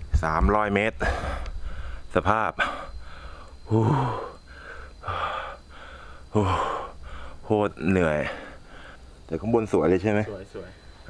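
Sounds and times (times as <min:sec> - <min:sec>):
man breathing hard: 0:01.0 - 0:07.5, 0:08.2 - 0:09.2.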